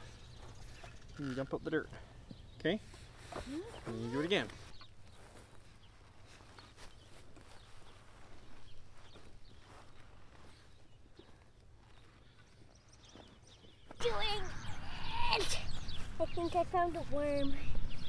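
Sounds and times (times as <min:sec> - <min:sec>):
children's voices: 0:14.0 - 0:17.8.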